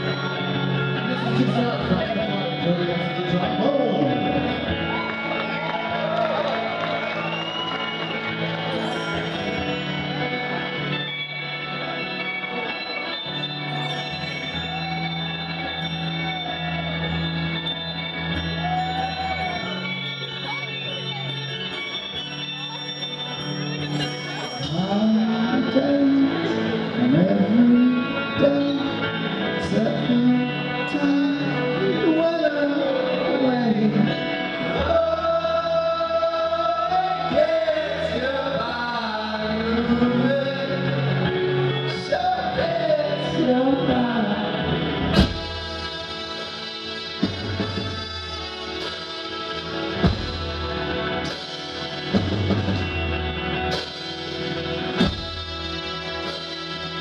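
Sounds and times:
man singing: 0.0s - 4.7s, 24.4s - 51.2s
guitar: 0.0s - 57.0s
keyboards: 0.0s - 57.0s
drums: 33.8s - 57.0s.

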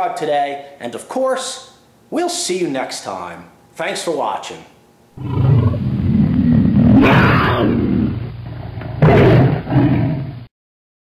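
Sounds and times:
big cat roaring: 5.2s - 10.5s.

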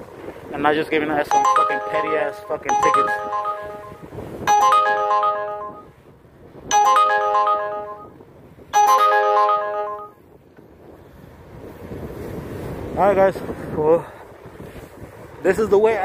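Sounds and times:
phone ringtone chiming melody: 1.2s - 6.0s, 6.7s - 8.2s, 8.8s - 10.2s.

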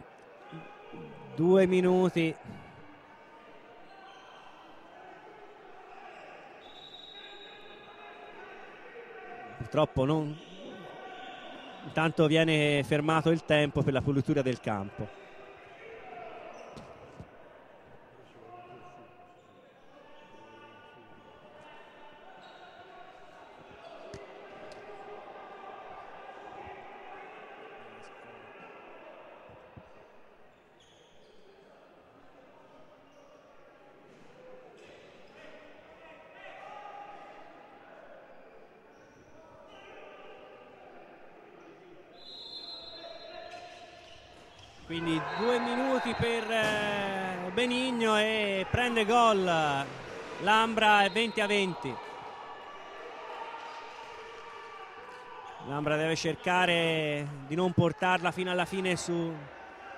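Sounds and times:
voices talking in large hall: 0.0s - 59.9s.

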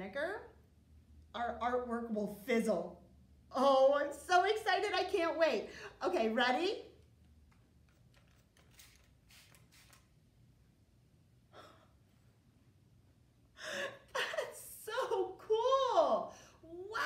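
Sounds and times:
spray bottle squirts: 8.3s - 10.2s.

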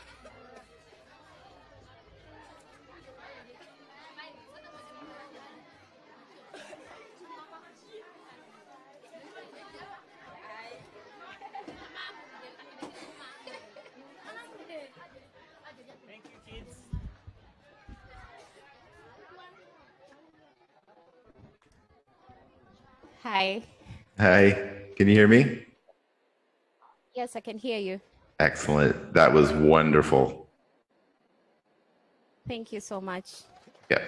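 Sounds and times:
children's voices chattering: 0.0s - 16.4s, 17.1s - 20.6s.

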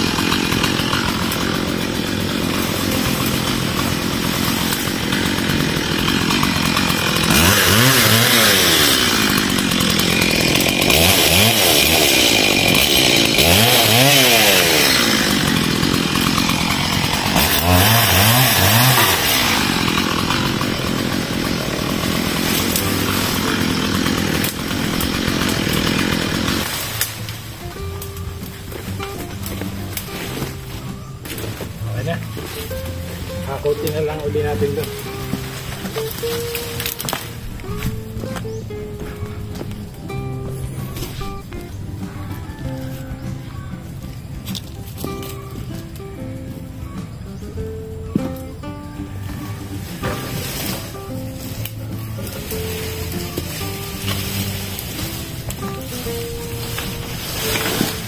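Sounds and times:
chainsaw cutting branches: 0.0s - 43.3s, 44.2s - 46.5s, 47.3s - 58.0s.

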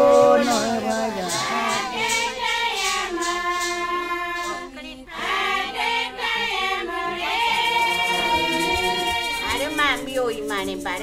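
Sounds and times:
women singing a chant: 0.0s - 11.0s.

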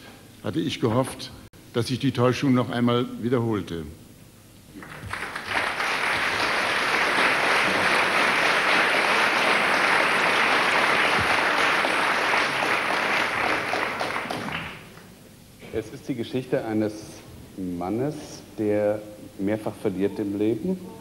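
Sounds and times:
audience applauding: 4.8s - 15.1s.

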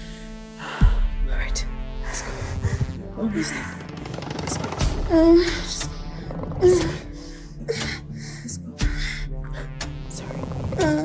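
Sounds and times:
background film music: 0.0s - 11.0s.

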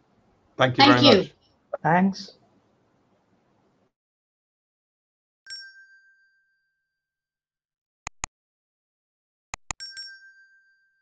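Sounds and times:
bell-like chime: 5.5s - 7.2s, 9.8s - 11.0s.

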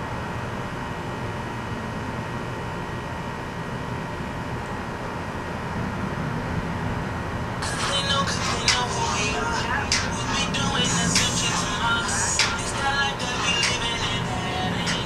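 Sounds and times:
low background rumble: 5.6s - 15.0s
music with singing: 7.6s - 15.0s.

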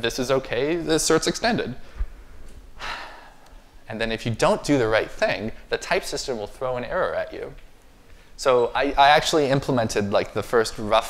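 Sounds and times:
man speaking: 0.0s - 1.8s, 3.8s - 7.6s, 8.4s - 11.0s
man breathing in: 1.8s - 3.6s.

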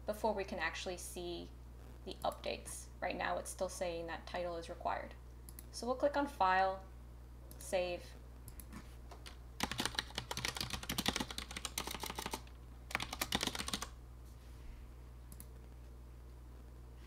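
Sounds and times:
typing on computer keyboard: 9.2s - 13.9s.

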